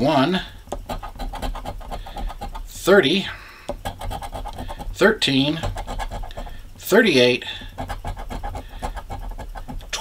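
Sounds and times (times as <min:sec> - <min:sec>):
coin scraping lottery ticket: 0:00.8 - 0:02.8, 0:03.8 - 0:06.6, 0:07.8 - 0:10.0.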